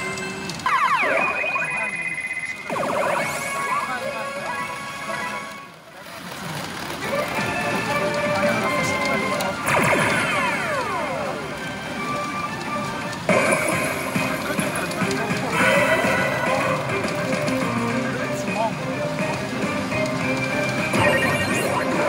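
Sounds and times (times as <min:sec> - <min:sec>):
pachinko machine music and effects: 0:00.0 - 0:05.8, 0:06.6 - 0:22.0.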